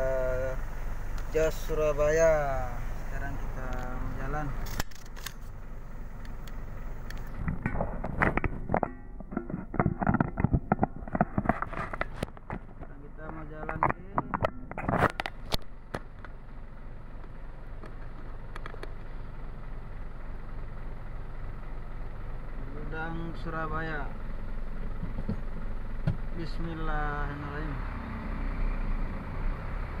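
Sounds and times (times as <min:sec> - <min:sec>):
diesel truck engine idling: 0:00.0 - 0:09.8, 0:10.6 - 0:30.0
loud clicks and knocks: 0:07.4 - 0:16.4.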